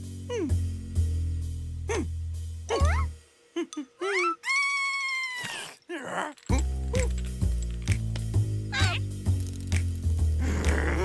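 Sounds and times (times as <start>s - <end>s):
cartoon character squealing: 4.0s - 5.8s, 8.8s - 9.0s.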